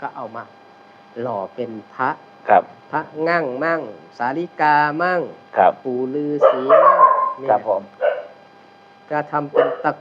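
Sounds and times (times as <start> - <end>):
man talking: 1.2 - 4.6, 5.5 - 6.8, 7.4 - 8.0
rough animal cry: 6.4 - 7.4.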